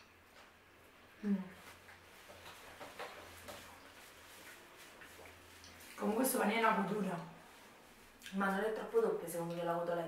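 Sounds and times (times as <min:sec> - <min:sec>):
chewing and mouth clicks: 0:03.6 - 0:06.1, 0:08.2 - 0:08.4.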